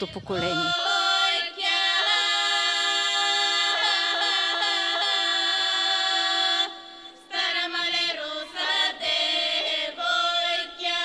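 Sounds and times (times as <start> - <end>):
girls singing folk song in harmony: 0.0 - 11.0.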